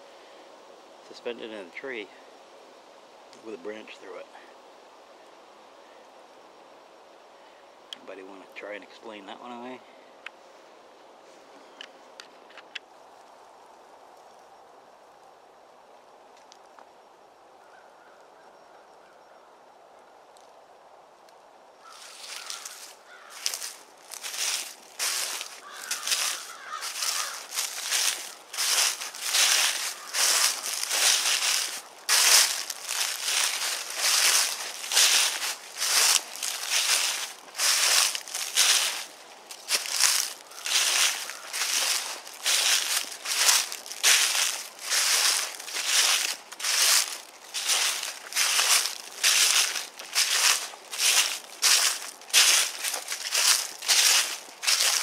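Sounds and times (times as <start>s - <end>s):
footsteps crunching dry leaves: 3.4s - 4.4s, 8.0s - 9.9s, 21.8s - 55.0s.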